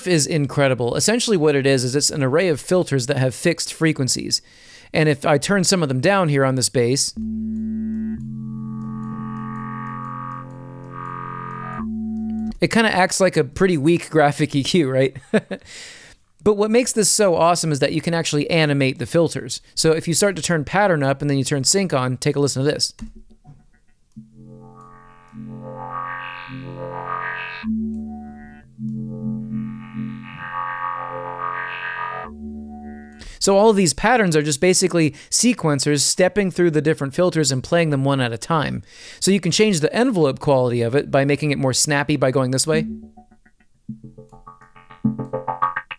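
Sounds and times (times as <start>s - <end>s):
sustained synth bass note: 7.2s - 12.6s, 23.5s - 33.2s, 42.8s - 45.7s.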